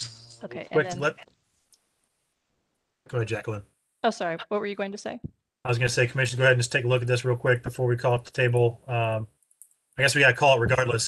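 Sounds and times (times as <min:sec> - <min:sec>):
person speaking a word: 0:00.4 - 0:01.2, 0:03.2 - 0:03.6, 0:05.7 - 0:09.2, 0:10.0 - 0:11.0.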